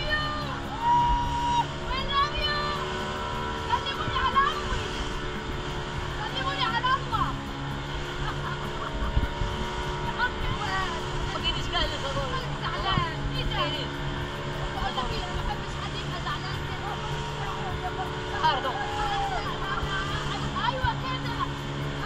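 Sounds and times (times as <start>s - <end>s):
people calling out: 0.0s - 3.0s, 15.7s - 22.0s
outboard motor running: 0.0s - 22.0s
water rushing: 0.0s - 22.0s.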